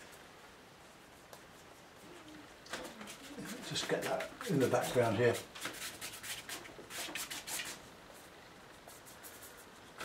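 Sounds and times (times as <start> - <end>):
brush sweeping on paper: 2.8 - 10.0.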